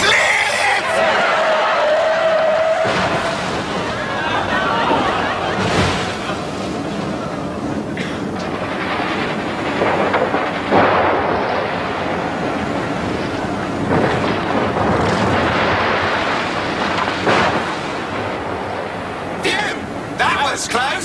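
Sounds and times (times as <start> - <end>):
bus crashing down rocky slope: 0.0 - 21.0.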